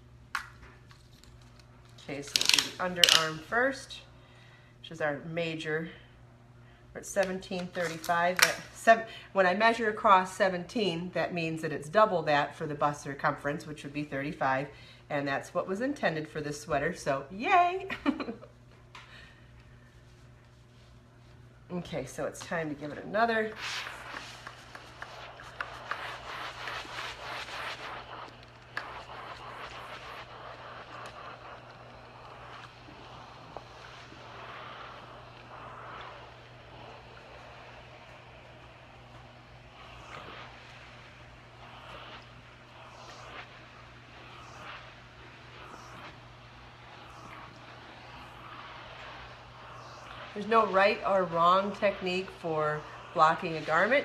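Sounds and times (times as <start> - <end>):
steam iron hissing: 2.1 - 3.9, 22.1 - 54.0.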